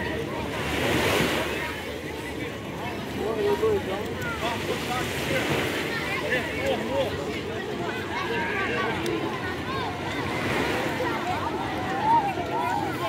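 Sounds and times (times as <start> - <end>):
sea water lapping: 0.0 - 13.0.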